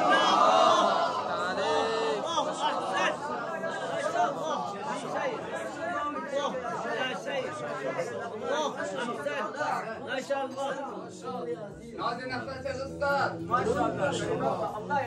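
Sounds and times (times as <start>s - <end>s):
men talking and calling out: 0.0s - 15.0s.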